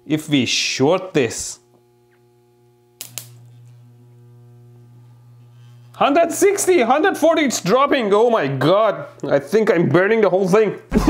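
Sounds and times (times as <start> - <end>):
transformer humming: 1.3 - 9.3
sharp click: 3.0 - 3.4.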